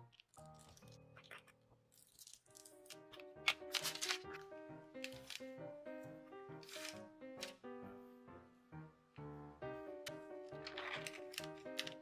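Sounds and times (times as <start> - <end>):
instrumental background music: 2.2 - 12.0
paper rustling and crackling: 2.9 - 5.6, 6.6 - 7.6, 10.5 - 12.0.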